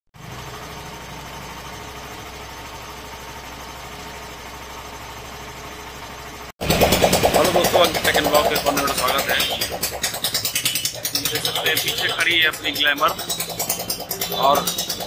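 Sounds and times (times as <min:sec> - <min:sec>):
motorcycle engine idling: 0:00.2 - 0:15.0
man speaking: 0:07.4 - 0:09.7, 0:11.2 - 0:13.3, 0:14.2 - 0:14.8.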